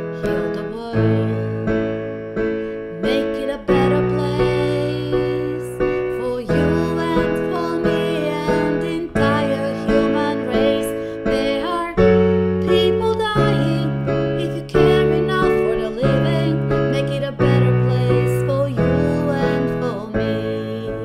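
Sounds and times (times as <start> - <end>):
woman singing a slow ballad: 0.0 - 2.1, 2.9 - 21.0
digital piano chords: 0.0 - 21.0.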